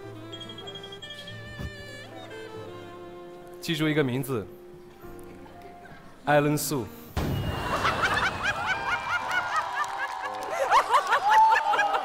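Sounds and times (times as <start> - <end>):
crowd laughing: 7.4 - 12.0.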